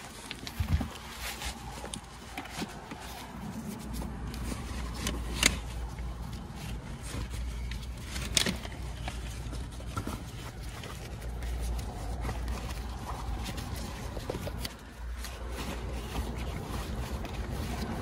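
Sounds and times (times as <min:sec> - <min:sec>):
bag rustling and scraping: 0:00.0 - 0:18.0.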